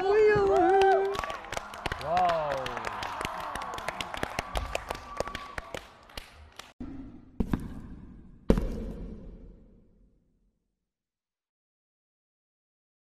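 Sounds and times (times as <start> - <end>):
audience clapping and cheering: 0.0 - 6.8.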